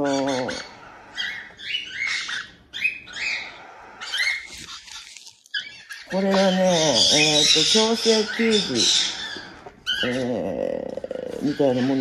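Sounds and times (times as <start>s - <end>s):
chicks high begging calls: 0.0s - 10.3s.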